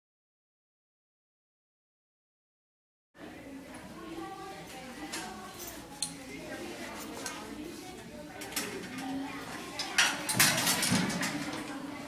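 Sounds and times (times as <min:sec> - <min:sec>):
faint background voices: 0:03.2 - 0:12.0.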